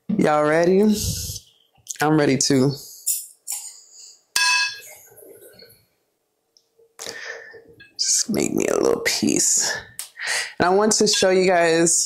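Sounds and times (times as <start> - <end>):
fork clinking on plate: 4.4 - 5.0.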